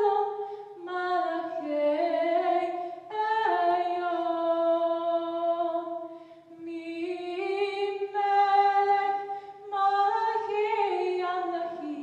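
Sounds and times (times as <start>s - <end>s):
young woman singing unaccompanied: 0.0s - 12.0s.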